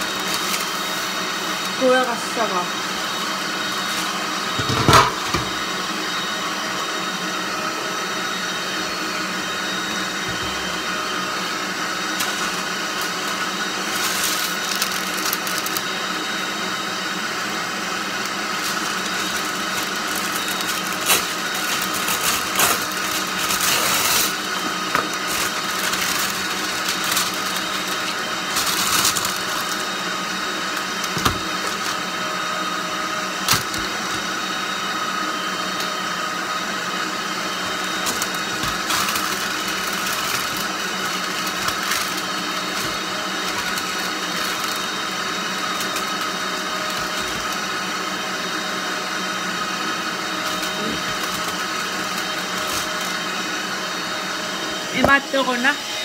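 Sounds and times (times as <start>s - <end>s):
baking paper rustling: 0.0s - 2.4s, 10.0s - 16.1s, 17.8s - 32.2s, 37.5s - 47.9s, 50.1s - 53.7s
electric motor humming: 0.0s - 56.0s.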